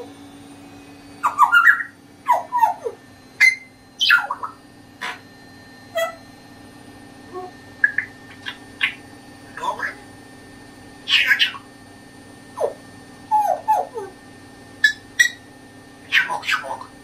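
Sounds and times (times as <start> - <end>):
parrot whistling clicking and squawking: 1.2 - 5.2, 5.9 - 6.2, 7.8 - 9.0, 11.0 - 11.7, 14.8 - 17.0.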